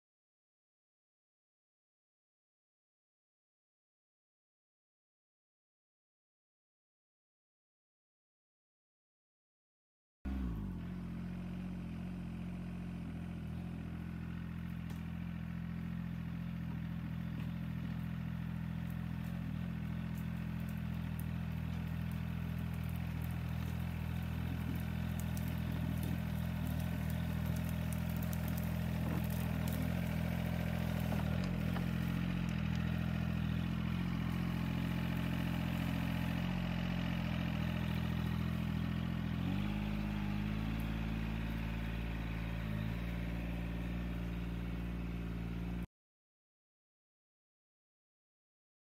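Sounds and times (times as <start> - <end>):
tractor diesel engine running: 10.3 - 45.9.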